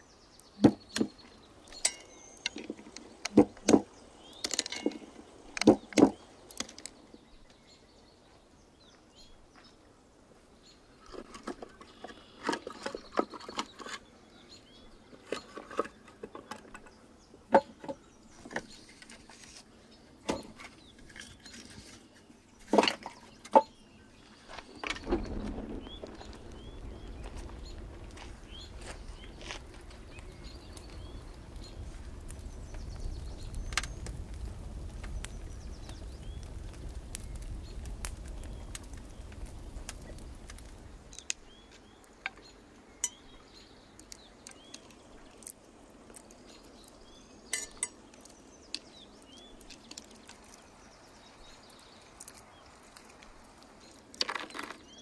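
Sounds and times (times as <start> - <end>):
wood fire crackling: 0.0 - 7.7, 12.4 - 55.0
firewood logs knocking: 0.6 - 1.2, 2.4 - 6.9, 24.5 - 41.4.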